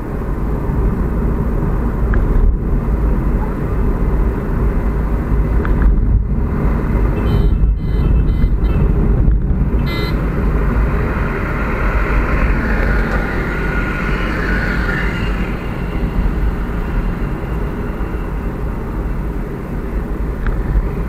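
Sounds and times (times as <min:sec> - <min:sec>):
car engine and tyre rumble: 0:00.0 - 0:21.0.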